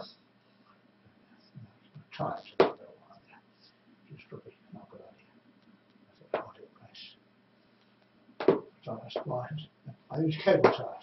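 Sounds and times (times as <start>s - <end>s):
whispered hiss: 0.0s - 11.0s.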